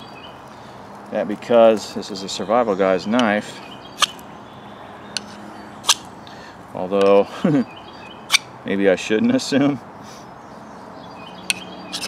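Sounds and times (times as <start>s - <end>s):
ferro rod scraping knife spine: 5.1s - 6.1s, 11.5s - 12.0s.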